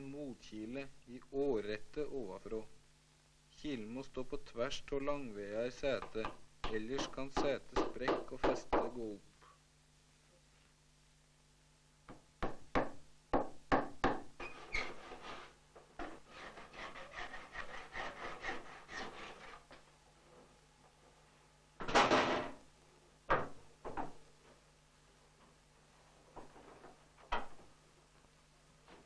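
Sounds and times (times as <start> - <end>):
hammer knocking wooden wedge: 6.0 - 8.9, 12.1 - 14.3
handsaw rasping on wood: 16.0 - 19.6.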